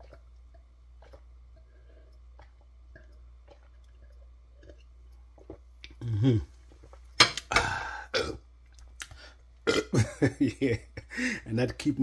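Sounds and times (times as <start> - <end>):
man burping loudly: 6.0 - 6.6, 7.4 - 8.4, 9.6 - 10.3
breathy bursts of breath: 7.6 - 8.2, 11.1 - 11.5.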